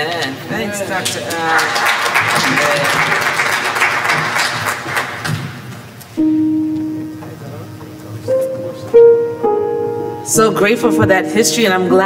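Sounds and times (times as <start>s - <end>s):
congregation clapping: 1.0s - 6.0s
keyboard held low note: 6.2s - 12.0s.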